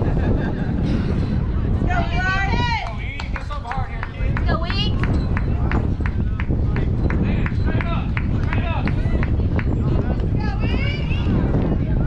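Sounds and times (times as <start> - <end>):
wind rumbling on microphone: 0.0 - 12.0
hand claps: 2.8 - 10.3.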